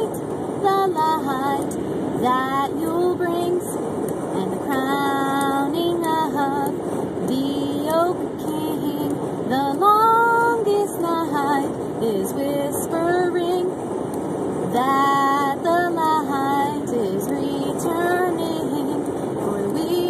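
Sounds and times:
woman singing unaccompanied: 0:00.0 - 0:03.8, 0:04.4 - 0:13.8, 0:14.7 - 0:20.0
car road noise: 0:00.0 - 0:20.0.

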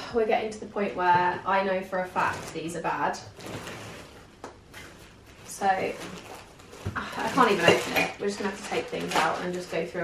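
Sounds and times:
rustle of packed contents: 0:03.4 - 0:10.0.

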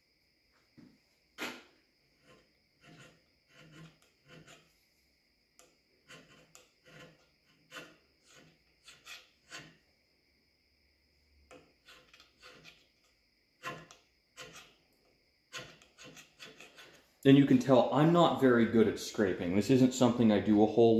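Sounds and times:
scraper scraping metal: 0:02.2 - 0:04.8, 0:06.0 - 0:09.9, 0:11.5 - 0:14.8, 0:15.5 - 0:17.1.

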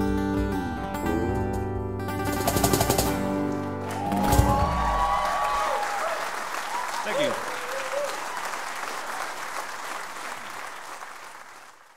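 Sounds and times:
audience applauding and cheering: 0:03.5 - 0:11.9
whoops from audience: 0:03.8 - 0:08.7.

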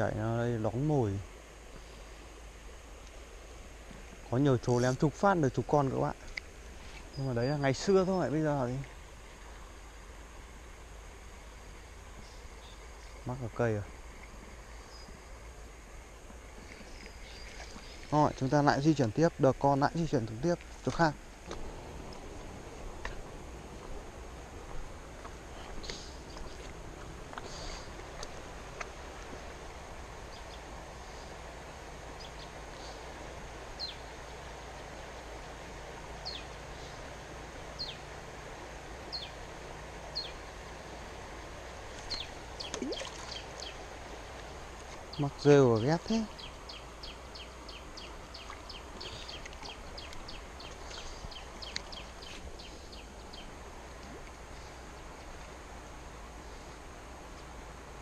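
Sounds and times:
stream flowing: 0:00.0 - 0:58.0
bird chirping: 0:33.8 - 0:34.1, 0:36.2 - 0:37.0, 0:37.8 - 0:38.0, 0:39.1 - 0:39.4, 0:40.1 - 0:40.4, 0:42.0 - 0:43.8, 0:45.1 - 0:53.5.

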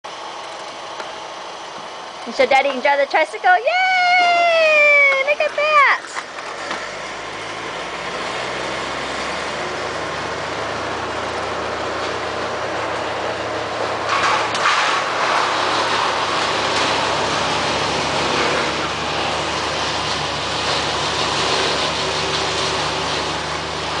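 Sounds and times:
plastic wheels rolling on concrete: 0:02.3 - 0:07.1.

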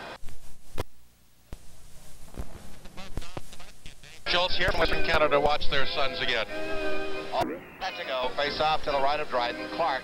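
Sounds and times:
crackly noise with clicks: 0:00.2 - 0:04.2
faint garbled soundtrack fragments: 0:07.2 - 0:09.4
tape glitch pops: 0:07.4 - 0:07.9.

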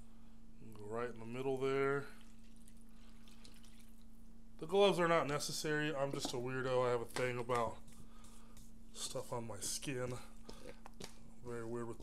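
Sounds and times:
water dripping and splashing into flour: 0:02.0 - 0:04.2.

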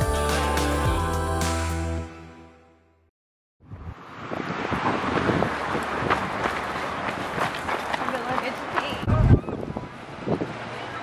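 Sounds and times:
wind on microphone: 0:03.6 - 0:07.9, 0:08.9 - 0:10.7
running footfalls on dirt path: 0:05.2 - 0:09.2.

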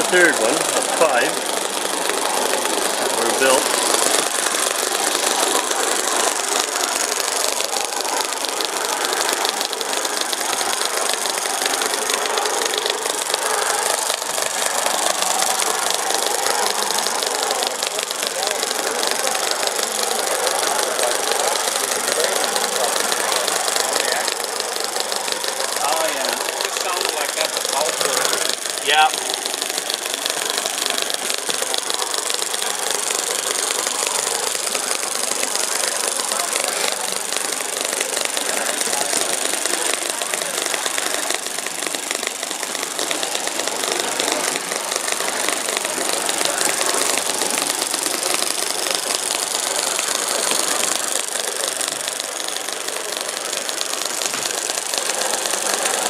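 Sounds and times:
tiny model engine ticking: 0:00.0 - 0:56.0.

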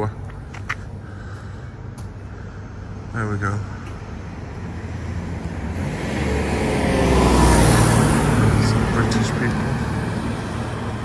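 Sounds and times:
car driving past: 0:04.7 - 0:11.0.

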